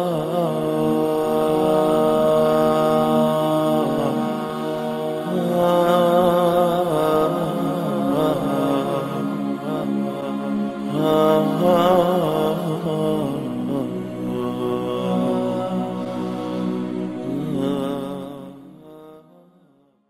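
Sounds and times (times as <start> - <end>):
wordless chant-like vocals: 0.0 - 20.0.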